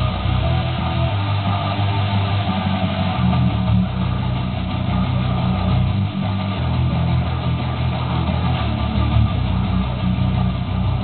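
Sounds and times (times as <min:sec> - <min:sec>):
electric bass guitar picking: 0:00.0 - 0:11.0.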